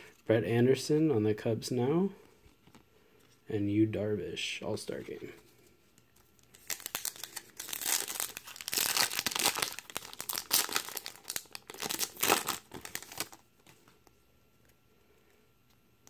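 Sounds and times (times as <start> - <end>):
foil wrapper tearing and crinkling: 6.5 - 13.4.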